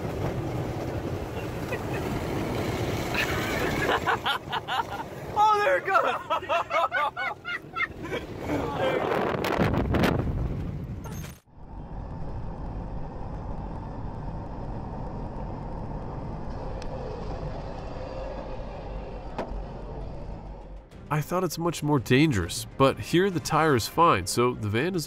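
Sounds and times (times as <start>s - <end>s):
rough road and wind noise: 0.0s - 20.9s
car road and engine noise: 0.0s - 22.4s.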